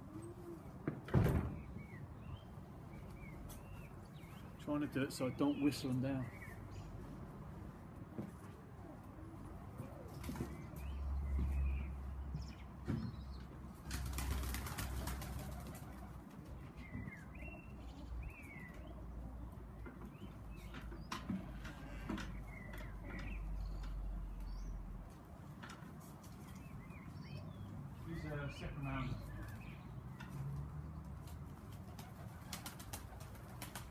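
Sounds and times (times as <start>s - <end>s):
pigeon wings flapping: 13.8s - 16.2s, 31.5s - 33.9s.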